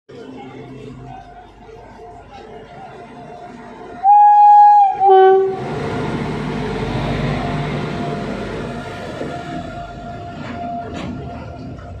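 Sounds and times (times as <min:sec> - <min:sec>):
freight train rumbling past: 0:00.1 - 0:12.0
locomotive horn blasts: 0:04.0 - 0:11.1.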